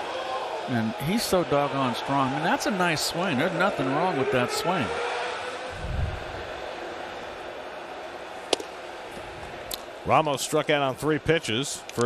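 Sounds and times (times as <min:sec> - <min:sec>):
low whoosh: 0:05.7 - 0:06.5.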